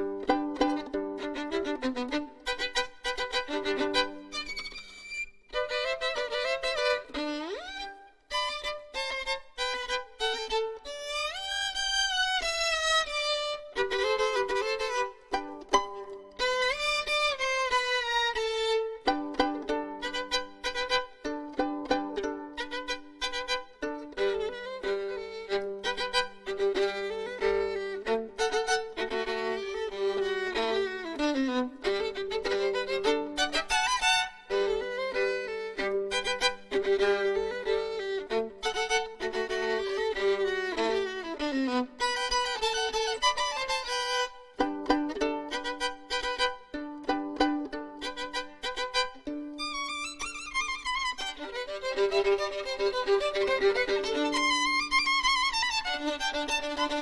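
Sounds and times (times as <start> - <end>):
solo violin playing fast runs: 0.0 - 57.0.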